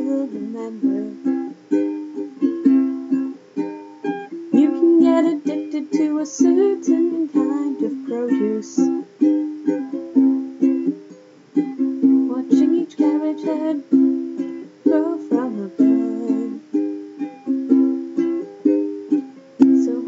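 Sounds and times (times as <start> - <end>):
ukulele strummed softly: 0.0 - 20.0.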